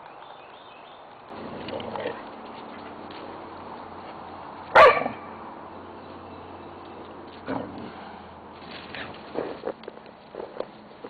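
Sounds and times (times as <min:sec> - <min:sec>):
dog barking: 0:04.7 - 0:05.3.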